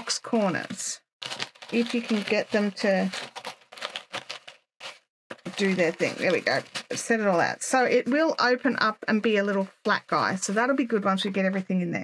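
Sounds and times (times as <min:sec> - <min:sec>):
plastic pencil case crinkling: 0:00.0 - 0:11.6.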